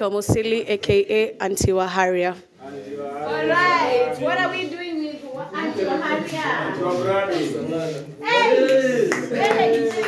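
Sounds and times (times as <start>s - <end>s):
group of men talking: 2.6s - 10.0s
hand claps: 8.6s - 10.0s.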